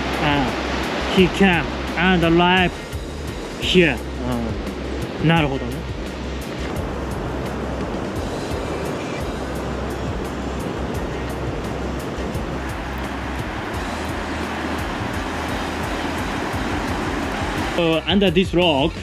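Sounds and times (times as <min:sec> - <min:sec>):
waves breaking on rocks: 0:00.0 - 0:04.0, 0:04.6 - 0:18.1
music with light beat: 0:00.0 - 0:19.0.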